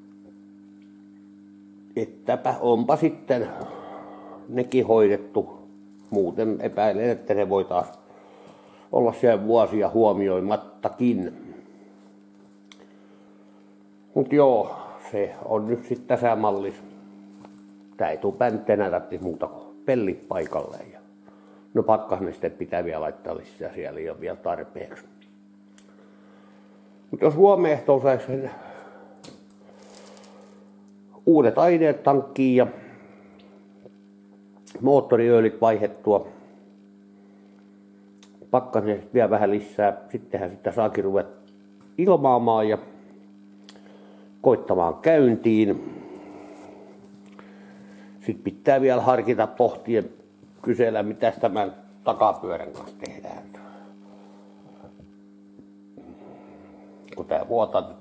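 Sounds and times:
faint electrical hum: 0.0 - 58.0.

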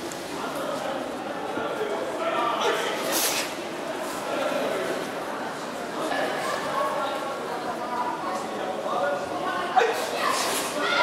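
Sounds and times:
people calling out in hall: 9.6 - 11.0.

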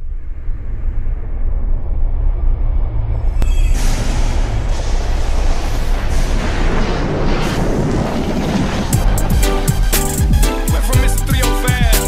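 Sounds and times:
deep steady rumble: 0.0 - 12.0.

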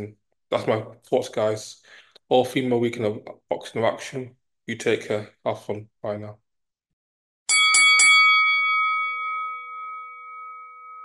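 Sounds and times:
bell-like chime ringing: 7.5 - 11.0.

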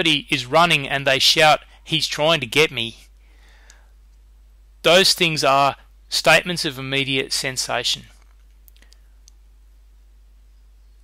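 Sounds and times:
low steady hum: 0.0 - 11.0
light hiss: 7.4 - 11.0
faint clicks: 8.2 - 9.4.

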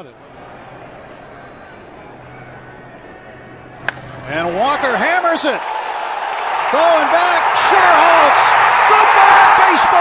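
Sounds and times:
faint hum: 0.0 - 6.2
ballpark background noise: 0.0 - 10.0
baseball bat hitting ball: 3.8 - 4.4.

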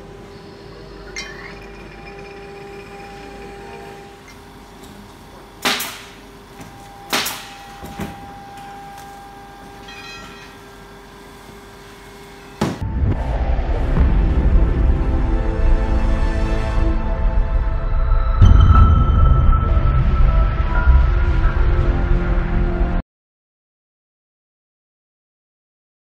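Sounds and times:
low hum: 0.0 - 10.4, 11.0 - 23.0
loud music: 12.8 - 23.0.

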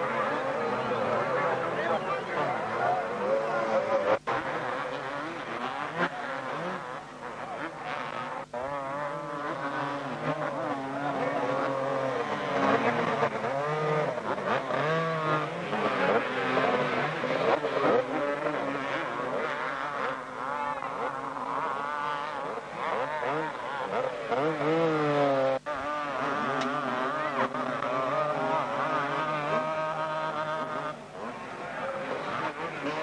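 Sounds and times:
motocross bikes revving: 0.0 - 33.0.

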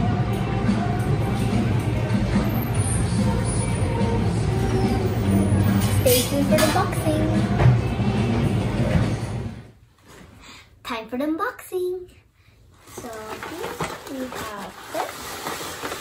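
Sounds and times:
background music: 0.0 - 9.8
people talking: 6.0 - 7.6, 10.9 - 12.2, 13.0 - 15.3.

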